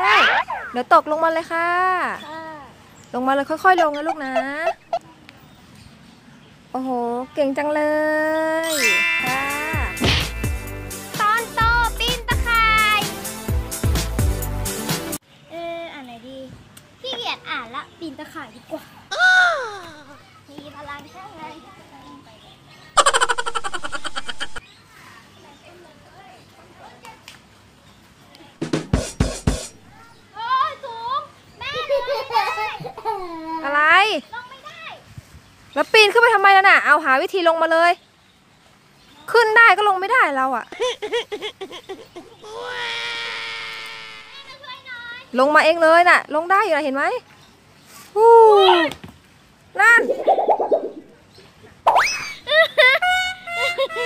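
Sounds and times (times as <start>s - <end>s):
high-pitched giggling sound effect: 0.0s - 0.8s, 8.6s - 10.7s, 50.0s - 51.1s, 51.9s - 54.0s
girl sobbing and wailing: 19.1s - 20.2s, 42.4s - 44.5s.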